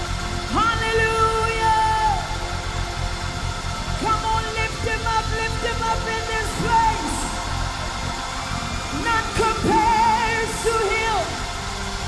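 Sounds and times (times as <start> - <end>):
person singing with music: 0.0 - 12.0.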